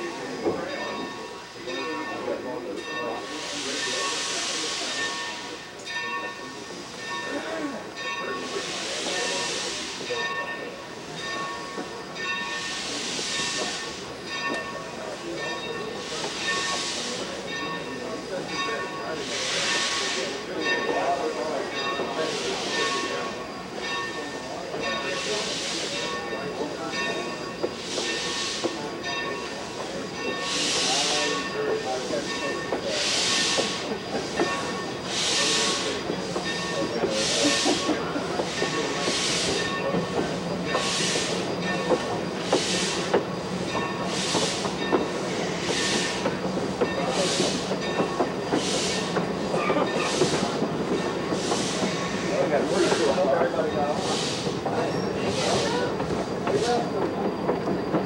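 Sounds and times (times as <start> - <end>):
rail cars rumbling on rails: 0.0 - 58.0
steam locomotive chuffing: 0.0 - 58.0.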